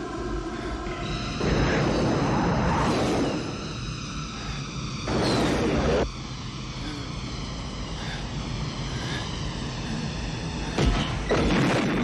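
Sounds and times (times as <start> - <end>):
jet aircraft drone and rush: 0.0 - 12.0.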